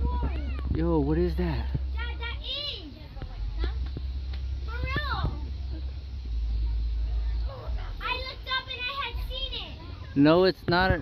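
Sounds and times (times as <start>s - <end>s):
steady low rumble: 0.0s - 10.2s.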